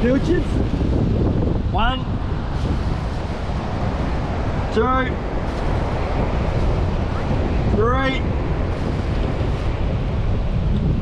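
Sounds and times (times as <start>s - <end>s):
surf washing on beach: 0.0s - 11.0s
wind buffeting microphone: 0.0s - 11.0s.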